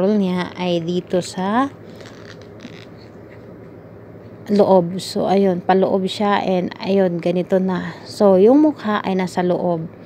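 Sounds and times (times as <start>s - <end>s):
low room noise: 0.0s - 10.0s
paper rustling: 1.8s - 3.5s.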